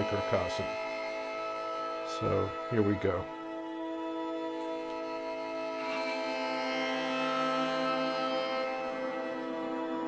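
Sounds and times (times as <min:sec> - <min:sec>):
bowed string drone: 0:00.0 - 0:10.0.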